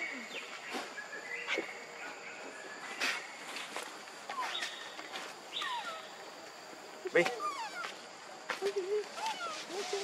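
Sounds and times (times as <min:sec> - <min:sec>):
monkey high falling calls: 0:04.3 - 0:06.2, 0:07.2 - 0:08.0, 0:08.9 - 0:10.0.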